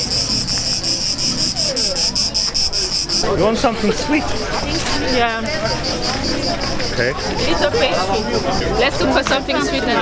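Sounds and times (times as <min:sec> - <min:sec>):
insect chirping trill: 0:00.0 - 0:09.5.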